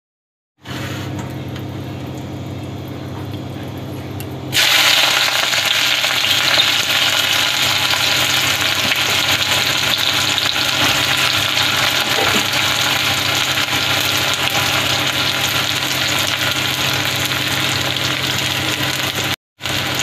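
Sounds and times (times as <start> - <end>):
onions sizzling in hot oil: 4.5 - 20.0.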